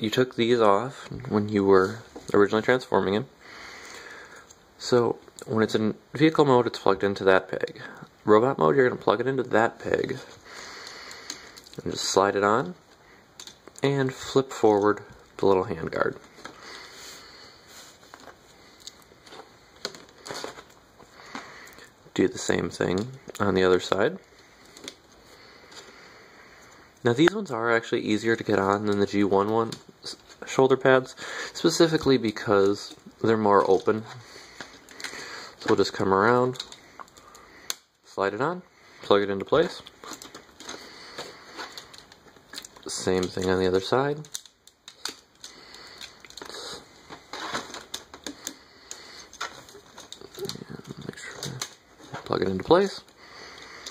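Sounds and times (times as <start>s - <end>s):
plastic toy parts rubbing: 39.6s - 53.9s.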